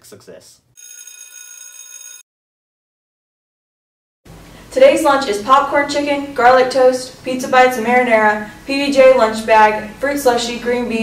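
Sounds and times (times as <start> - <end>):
bell-like ringing tones: 0.8 - 2.2.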